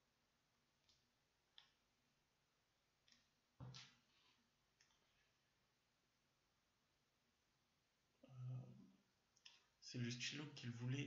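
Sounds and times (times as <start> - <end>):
person speaking: 9.8 - 11.0.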